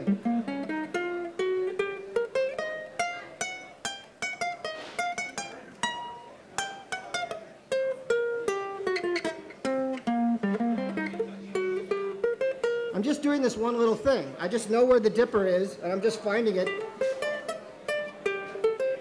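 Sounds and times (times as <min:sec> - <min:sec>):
ukulele picked notes: 0:00.0 - 0:19.0.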